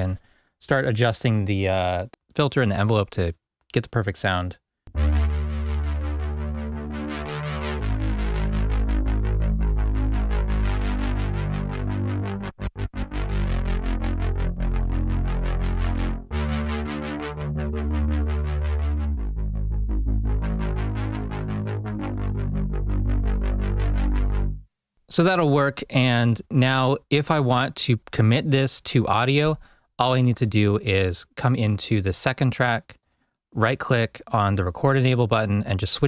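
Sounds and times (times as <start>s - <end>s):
synthesizer playing low notes: 4.9s - 24.7s.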